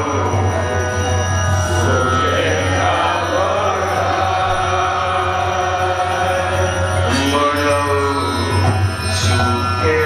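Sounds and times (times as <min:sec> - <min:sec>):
man singing into a microphone: 0:00.0 - 0:10.0
sustained accompanying tones: 0:00.0 - 0:10.0.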